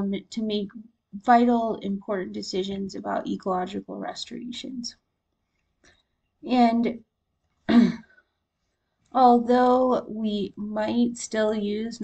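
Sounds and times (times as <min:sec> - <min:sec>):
woman clearing her throat: 0:07.7 - 0:08.0.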